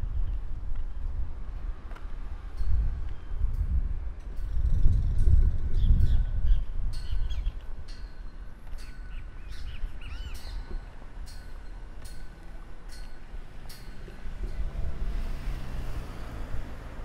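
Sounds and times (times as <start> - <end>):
birds chirping: 5.7 - 10.9
whistled bird calls: 8.8 - 10.7.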